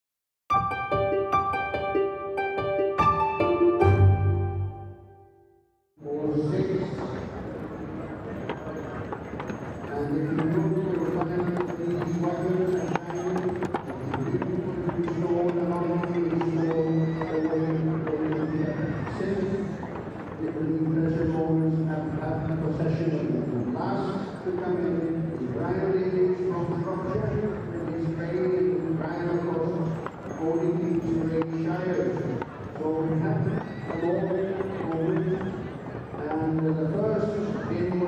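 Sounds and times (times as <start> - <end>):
man talking over loudspeaker: 6.0 - 7.4, 9.8 - 38.0
horse whinnying: 15.6 - 20.0, 33.0 - 36.1.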